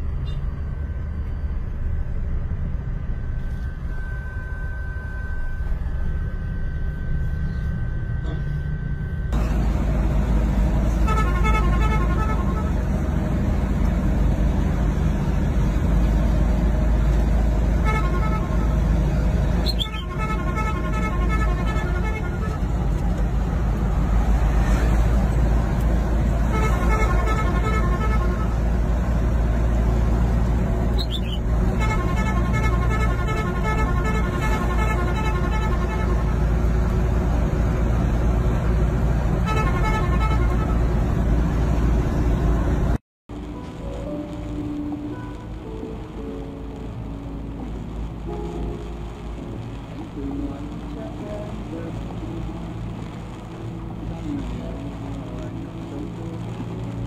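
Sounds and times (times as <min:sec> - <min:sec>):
road noise: 0:00.0 - 0:57.0
truck engines rumbling: 0:00.0 - 0:57.0
car horn honking: 0:10.9 - 0:12.8, 0:17.8 - 0:18.8, 0:19.6 - 0:22.8, 0:26.5 - 0:28.6, 0:31.0 - 0:36.4, 0:39.4 - 0:40.8.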